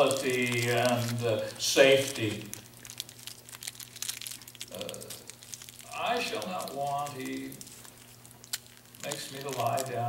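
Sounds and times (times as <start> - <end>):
person saying uh: 0.0 - 2.5, 4.7 - 5.2, 5.9 - 7.6, 9.0 - 10.0
crackling clicks: 0.0 - 10.0
low electrical hum: 0.0 - 10.0.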